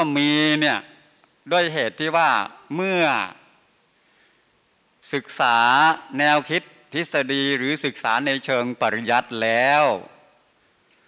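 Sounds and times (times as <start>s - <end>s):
man speaking: 0.0s - 3.5s, 5.0s - 10.3s.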